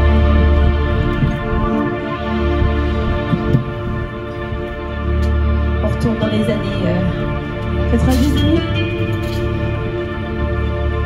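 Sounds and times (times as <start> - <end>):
low throbbing bass: 0.0 - 11.0
sustained synthesizer chords: 0.0 - 11.0.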